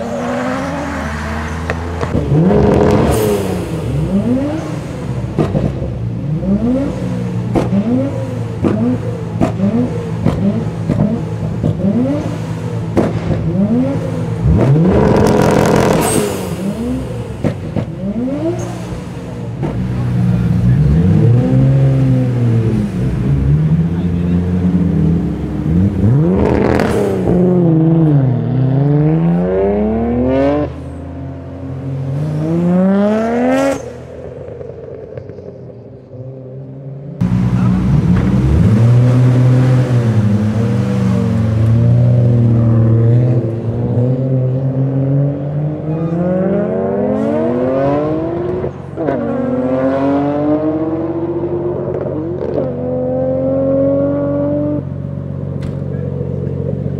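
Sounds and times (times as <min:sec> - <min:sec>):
car engine revving: 0:00.0 - 0:36.5, 0:37.2 - 0:56.9.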